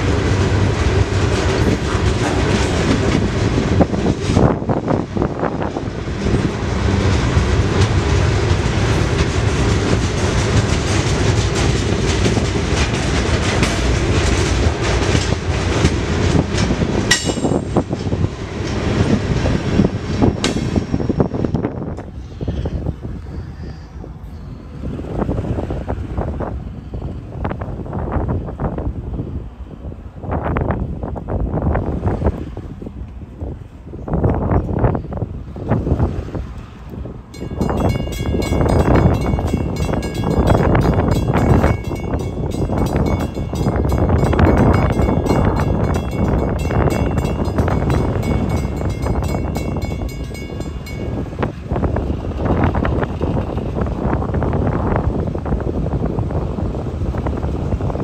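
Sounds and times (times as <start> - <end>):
uneven gusts of rumbling noise: 0.0 - 58.0
freight cars clattering over rail joints: 1.0 - 4.6, 7.6 - 21.3.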